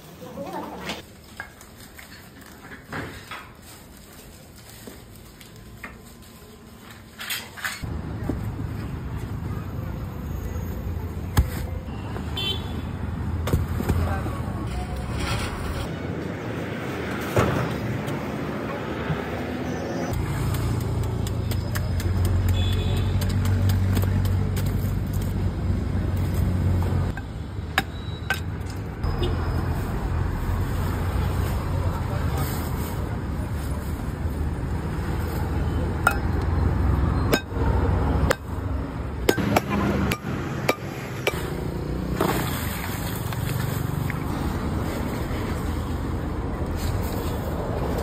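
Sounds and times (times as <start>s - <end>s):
roadside traffic: 0.0s - 48.0s.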